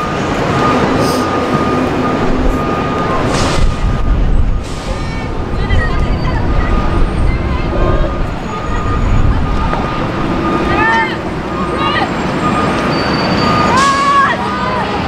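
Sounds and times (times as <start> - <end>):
low outdoor rumble: 0.3 - 12.9
distant players shouting: 5.0 - 15.0.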